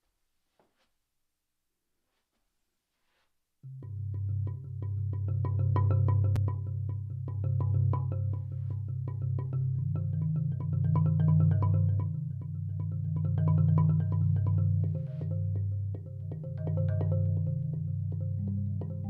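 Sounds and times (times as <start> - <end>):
marimba played with mallets: 3.7 - 19.0.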